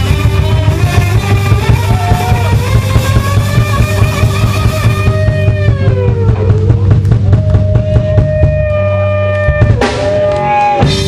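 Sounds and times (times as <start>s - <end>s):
drum kit beating: 0.0s - 11.0s
held guitar notes: 0.0s - 11.0s.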